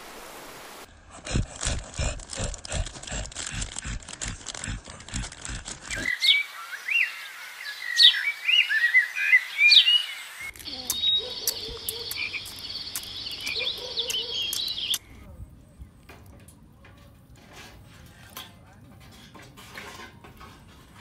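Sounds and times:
birds chirping: 5.4s - 16.1s
frogs croaking: 5.9s - 15.0s
insects trilling: 10.5s - 15.0s.

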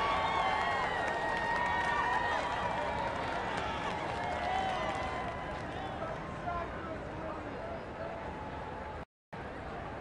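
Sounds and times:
crowd calling and cheering: 0.0s - 10.0s.

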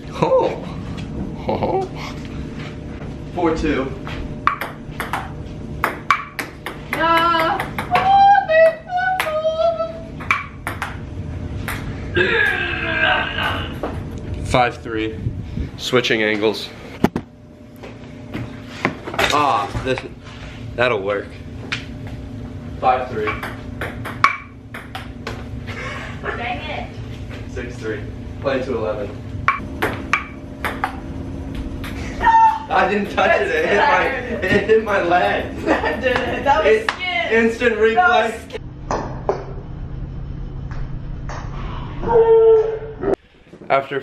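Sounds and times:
ping-pong ball clicking: 4.4s - 8.1s, 10.2s - 11.0s, 23.3s - 25.1s, 29.5s - 31.0s.

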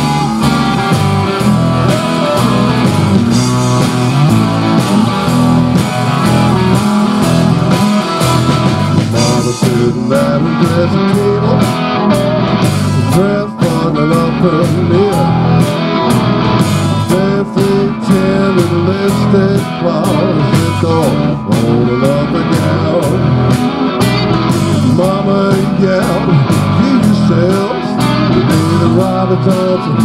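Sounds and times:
lead guitar bending notes: 0.0s - 30.0s
live rock band playing: 0.0s - 30.0s.

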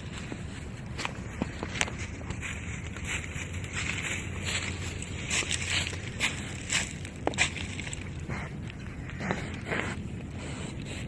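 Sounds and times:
footsteps in dry leaves: 0.0s - 11.0s
leaf crackles: 0.0s - 11.0s
low steady rumble: 0.0s - 11.0s.

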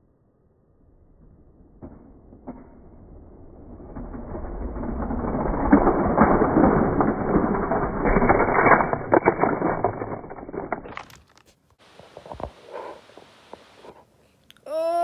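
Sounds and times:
toy train clattering on plastic track: 4.2s - 11.4s.

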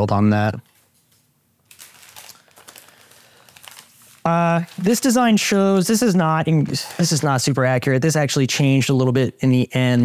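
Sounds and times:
paper rustling and crinkling: 0.6s - 5.3s.

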